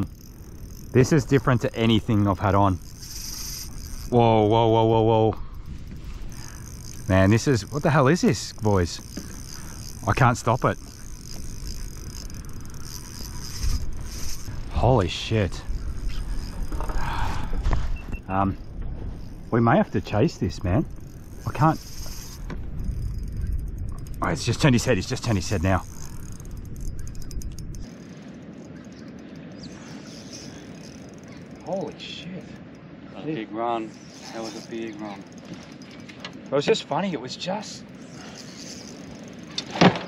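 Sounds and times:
wind on microphone: 0:00.0 - 0:28.2
fishing reel drag buzzing: 0:00.0 - 0:40.0.

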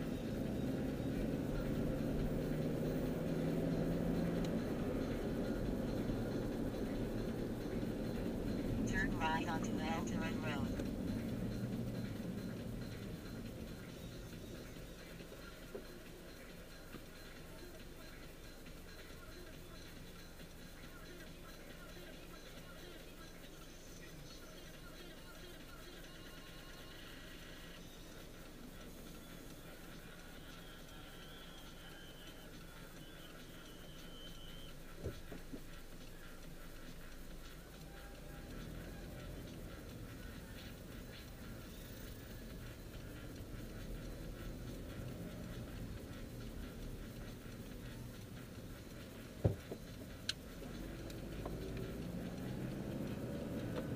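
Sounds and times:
faint music: 0:00.0 - 0:53.9
car cabin rumble: 0:49.2 - 0:53.9.

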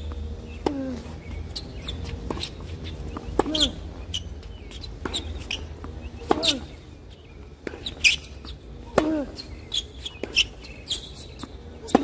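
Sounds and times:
racket hitting tennis ball: 0:02.1 - 0:03.8, 0:05.0 - 0:06.8, 0:07.6 - 0:09.4, 0:11.8 - 0:12.0.

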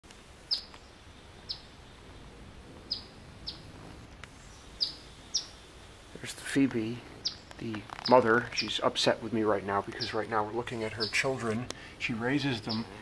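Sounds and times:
bird alarm chips: 0:02.9 - 0:03.7, 0:04.4 - 0:05.6, 0:06.7 - 0:11.8, 0:12.4 - 0:13.0.

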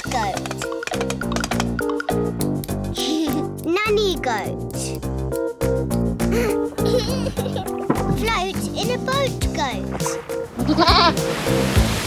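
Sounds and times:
cheerful children's music: 0:00.0 - 0:12.0
goat bleating: 0:10.6 - 0:11.2.

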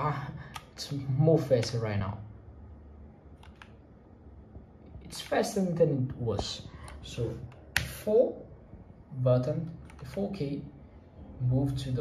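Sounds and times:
faint low hum: 0:00.0 - 0:12.0
keyboard key clicks: 0:03.4 - 0:03.8.

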